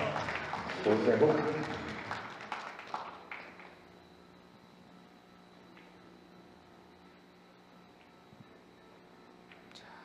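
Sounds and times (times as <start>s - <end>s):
audience applause: 0.0s - 3.8s.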